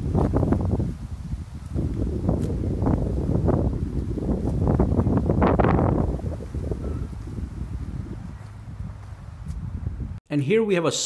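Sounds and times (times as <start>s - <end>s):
footsteps through grass and leaves: 0.0s - 9.9s
wind buffeting microphone: 0.0s - 10.2s.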